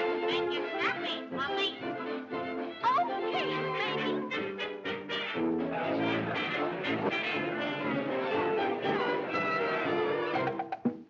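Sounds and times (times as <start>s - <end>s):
lively cartoon orchestra music: 0.0s - 10.9s.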